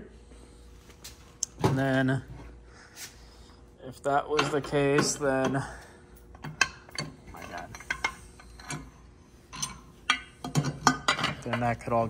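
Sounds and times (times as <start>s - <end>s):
metal parts clinking: 4.3s - 8.9s, 9.5s - 11.8s.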